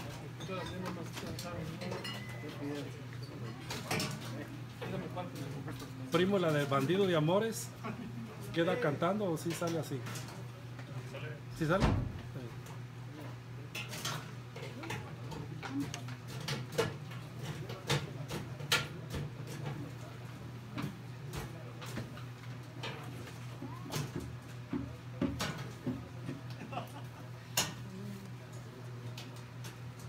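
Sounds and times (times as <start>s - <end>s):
low background chatter: 0.0s - 30.0s.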